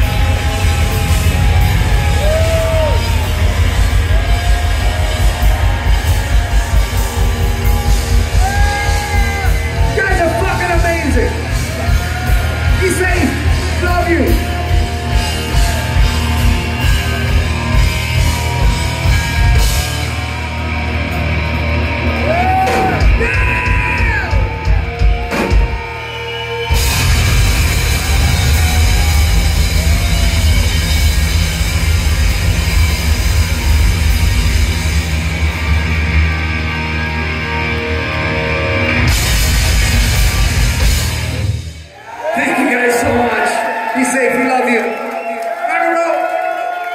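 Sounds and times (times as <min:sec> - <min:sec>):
hard rock band playing live: 0:00.0 - 0:41.9
person yelling and wailing: 0:22.3 - 0:24.7.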